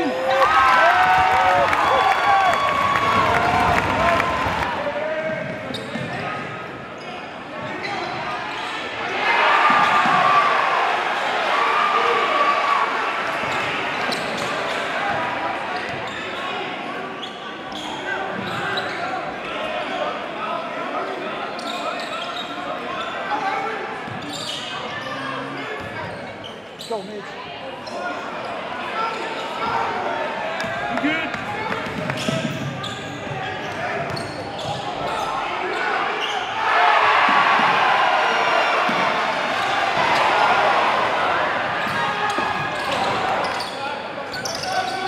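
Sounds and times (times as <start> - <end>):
crowd voices: 0.0 - 45.0.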